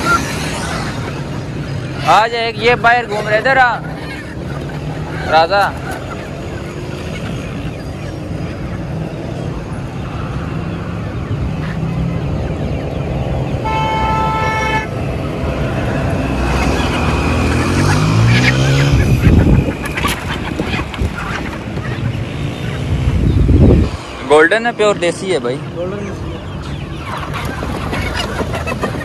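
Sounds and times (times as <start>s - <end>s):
engine passing loudly: 11.8s - 27.2s
vehicle horn tooting: 13.6s - 15.0s.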